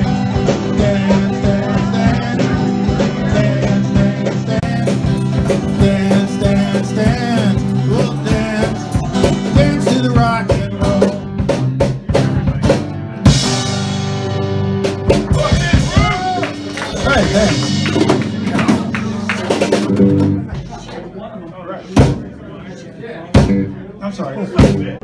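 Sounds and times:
man singing: 0.0s - 11.6s
acoustic guitar strummed: 0.0s - 20.5s.

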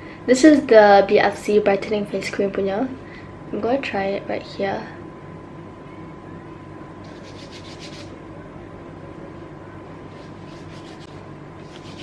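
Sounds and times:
skin rubbing on skin: 7.0s - 8.1s, 10.1s - 12.0s.

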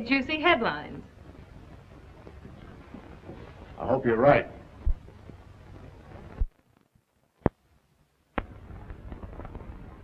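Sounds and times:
soundtrack hiss with crackles: 0.0s - 10.0s.

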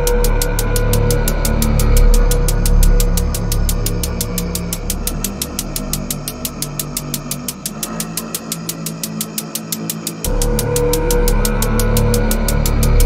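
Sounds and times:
deep bass: 0.0s - 8.4s, 10.2s - 13.0s
dark synth pads: 0.0s - 13.0s
fast hi-hat ticks: 0.0s - 13.0s.

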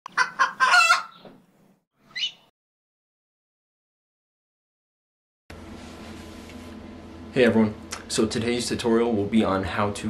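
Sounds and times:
rooster crowing: 0.2s - 1.2s.

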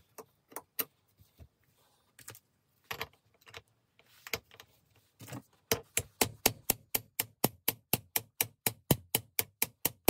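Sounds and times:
hammer tapping on metal: 5.7s - 10.0s.

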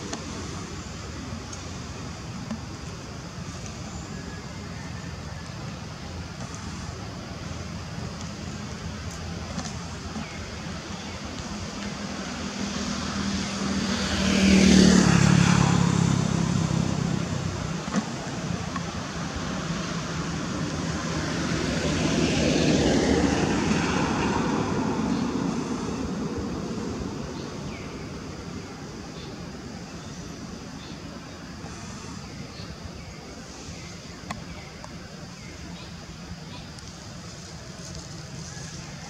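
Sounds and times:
motor vehicles passing by: 0.0s - 39.0s.

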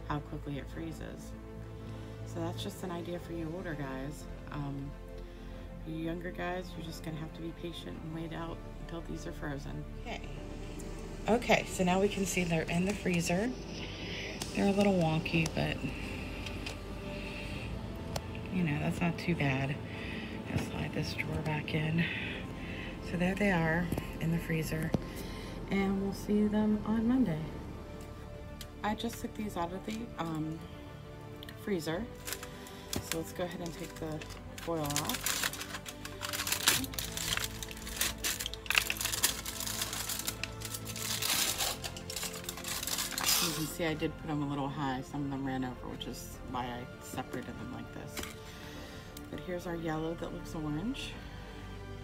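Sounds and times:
background music: 0.0s - 52.0s
aluminium foil crinkling: 31.4s - 43.8s, 48.1s - 48.5s
freezer humming: 32.0s - 43.6s.

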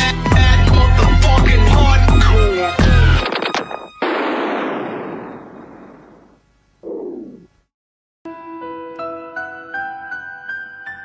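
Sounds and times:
explosion-like burst: 4.0s - 6.4s.

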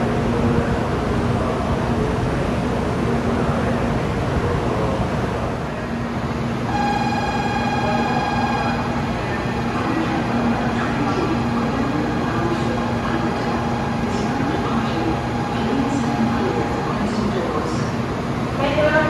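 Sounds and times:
stationary train humming: 0.0s - 19.0s
steady electronic tone: 6.7s - 9.0s.

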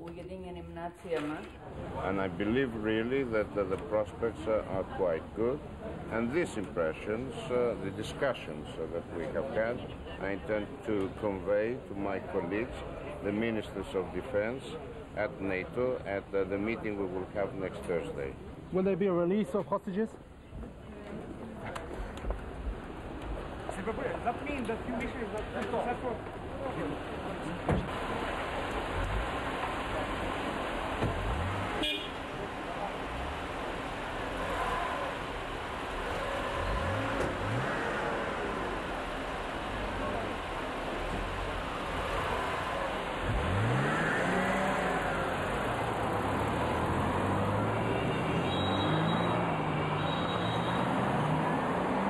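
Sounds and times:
steady outdoor hiss: 0.0s - 48.3s
car engine rumbling: 21.8s - 48.2s.

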